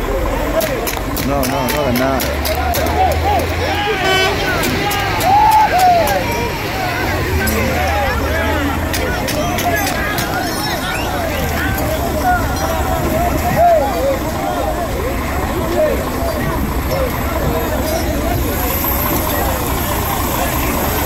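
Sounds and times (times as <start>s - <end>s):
crowd shouting and talking: 0.0s - 21.0s.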